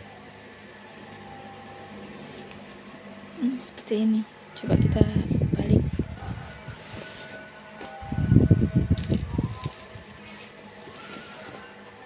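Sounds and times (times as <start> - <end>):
cloth rustling and brushing: 6.4 - 7.5, 9.7 - 11.8.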